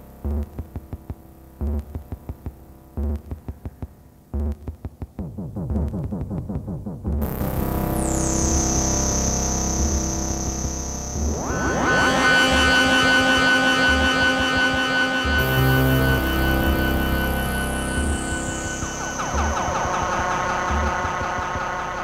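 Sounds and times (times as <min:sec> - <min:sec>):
low pulsing synth drone: 0:07.2 - 0:22.0
cluster of sustained synth tones: 0:07.4 - 0:22.0
high whistling synth tone: 0:11.2 - 0:22.0.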